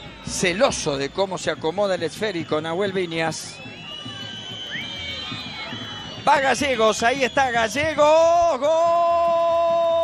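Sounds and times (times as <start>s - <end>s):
spectators whistling: 0.0s - 9.8s
murmur of crowd voices: 0.0s - 10.0s.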